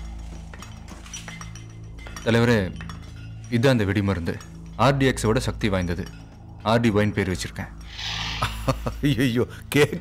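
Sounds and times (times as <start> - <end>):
faint metallic clinks: 0.0 - 7.8
background film score: 0.0 - 10.0.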